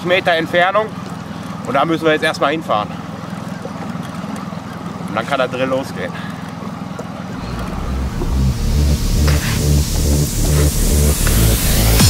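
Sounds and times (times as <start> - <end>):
outboard motor humming: 0.0 - 12.0
electronic dance music: 7.4 - 12.0.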